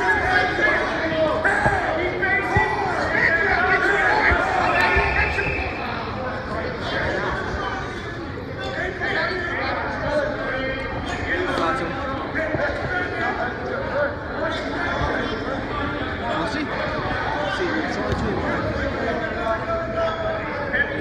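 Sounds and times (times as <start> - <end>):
indistinct chatter of many people: 0.0 - 21.0.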